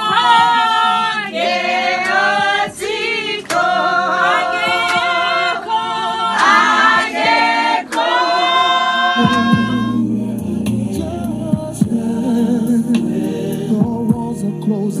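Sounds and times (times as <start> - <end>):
women singing a hymn: 0.0 - 15.0.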